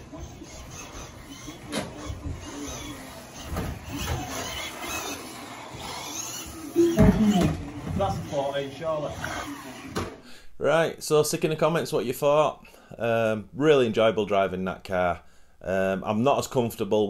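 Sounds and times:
rc car motor whine: 0.0 - 10.2.

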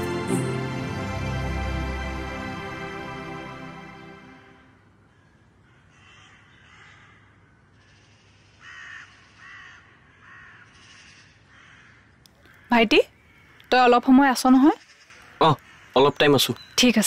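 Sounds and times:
soft background music: 0.0 - 4.8
crow cawing: 5.0 - 14.0, 14.6 - 16.6.

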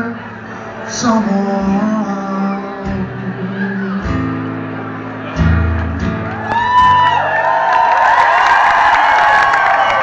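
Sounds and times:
audience cheering and whooping: 5.3 - 10.0.

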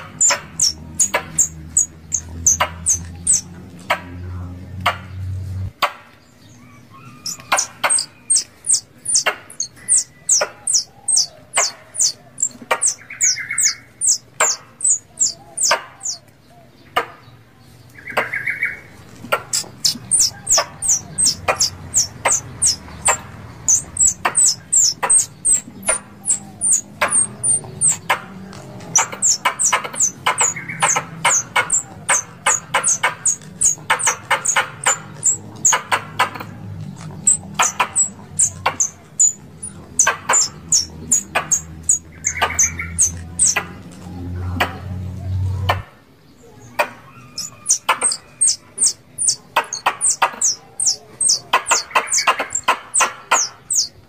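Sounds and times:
squirrel chirping: 0.0 - 5.4, 7.0 - 16.2, 19.3 - 44.0, 46.7 - 54.0
harsh low squirrel calls: 0.0 - 5.7, 6.6 - 16.3, 18.0 - 44.8, 46.5 - 54.0.

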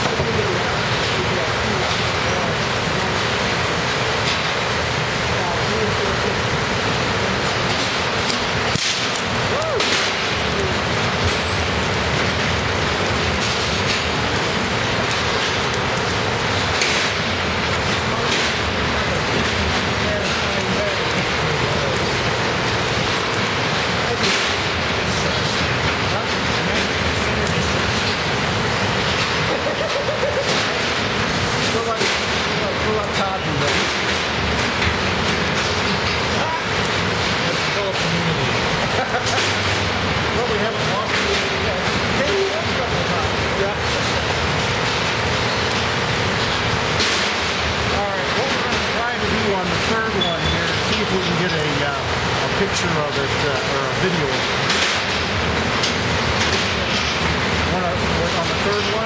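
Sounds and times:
loud steady background noise: 0.0 - 59.0
steady loud background noise: 0.0 - 59.0
electrical discharge snaps and crackles: 7.4 - 50.1, 50.7 - 59.0
sharp electrical discharge bang: 8.7 - 10.4, 24.2 - 24.7.

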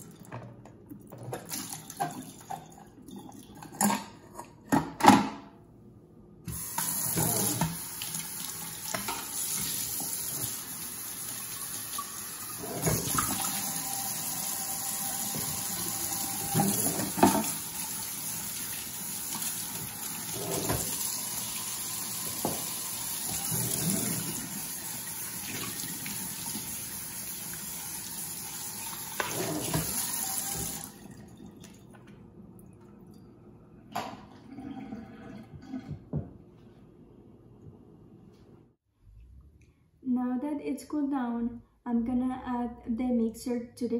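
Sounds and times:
sprayer running water into sink: 6.5 - 31.0.

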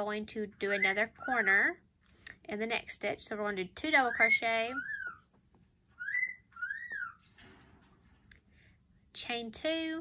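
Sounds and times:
whistle-like calls: 6.0 - 7.2.

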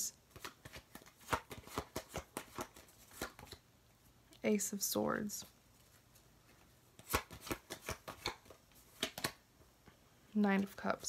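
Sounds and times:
cards snapping and tapping: 0.3 - 3.6, 7.0 - 9.4.

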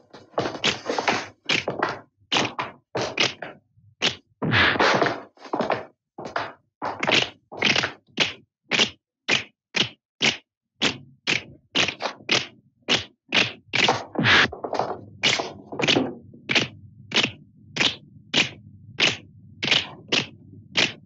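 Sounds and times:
punch and kick whacks: 12.9 - 14.5.

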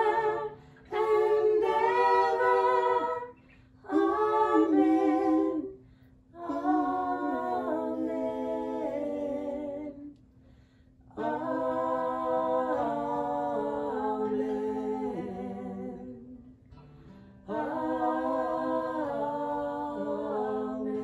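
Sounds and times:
women singing a hymn: 0.0 - 10.3, 11.0 - 16.6, 17.4 - 21.0.

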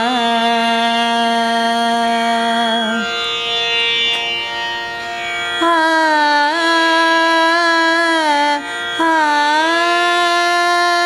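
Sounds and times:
woman singing on open vowel: 0.0 - 3.1, 5.6 - 11.0.

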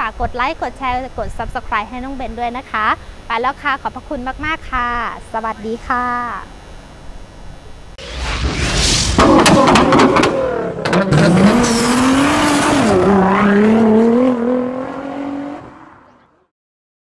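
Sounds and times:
sharp clicks and hits: 8.0 - 12.7
car engine revving: 8.1 - 16.2.

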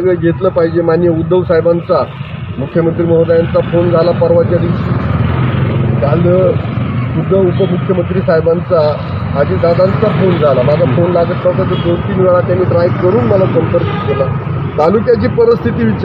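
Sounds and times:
man speaking: 0.0 - 5.2, 5.9 - 16.0
road traffic rumble: 0.0 - 16.0.

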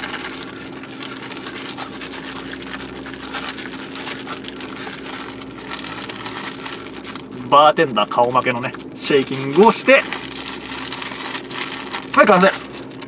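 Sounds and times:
plastic bag crinkling rustle: 0.0 - 13.0.

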